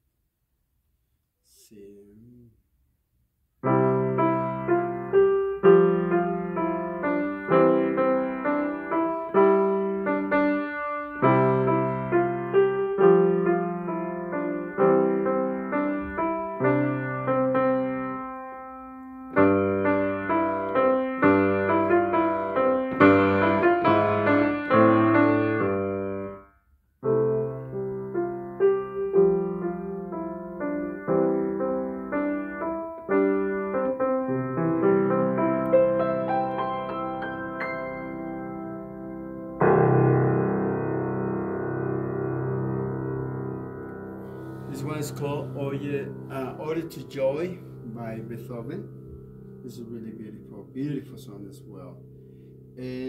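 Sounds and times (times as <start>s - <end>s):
piano melody with chords: 3.6s - 53.0s.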